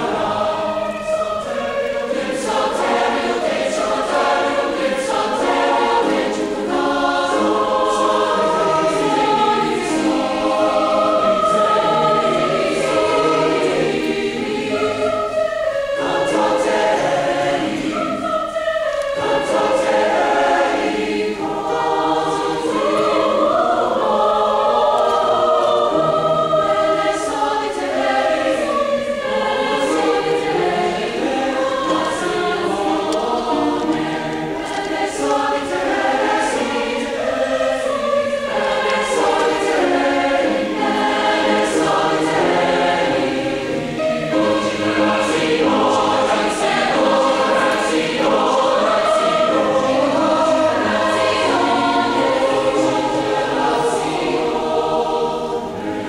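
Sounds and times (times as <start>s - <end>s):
large choir singing: 0.0s - 56.0s.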